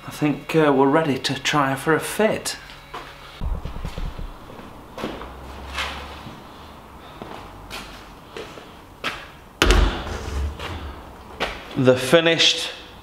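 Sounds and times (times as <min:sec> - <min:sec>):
heavy thump: 0:09.6 - 0:11.4.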